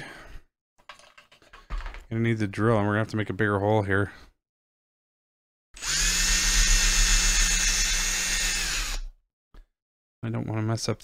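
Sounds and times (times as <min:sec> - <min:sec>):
cordless drill boring: 0:05.8 - 0:09.2.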